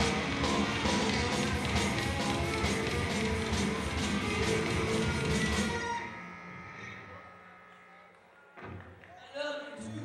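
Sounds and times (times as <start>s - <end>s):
punk rock band playing live: 0.0s - 5.9s.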